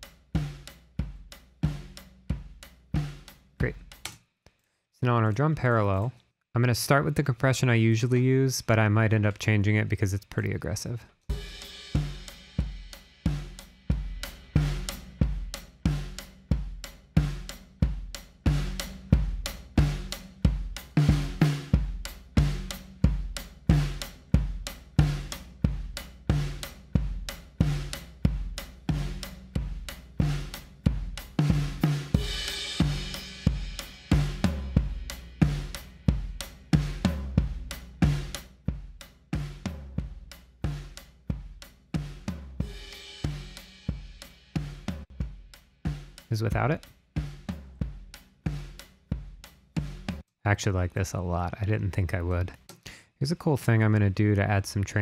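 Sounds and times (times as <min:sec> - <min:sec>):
drum kit groove: 0:00.0 - 0:04.2, 0:06.9 - 0:55.0.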